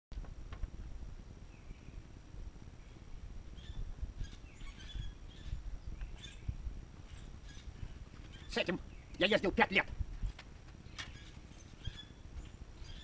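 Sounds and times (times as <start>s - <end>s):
wind rumble on microphone: 0.1s - 13.0s
faint bird chirps: 1.4s - 2.1s, 2.8s - 9.5s, 10.8s - 13.0s.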